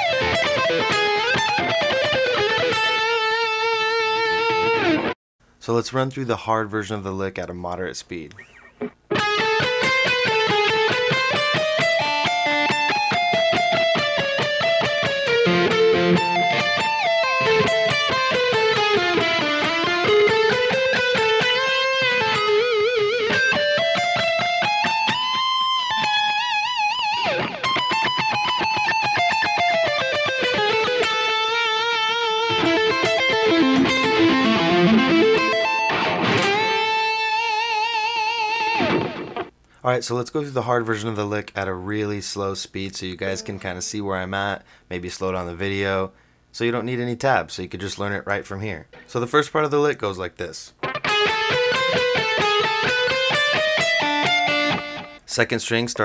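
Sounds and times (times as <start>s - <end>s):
distorted electric guitar metal lick: 0.0s - 5.2s, 8.8s - 39.5s, 50.8s - 55.2s.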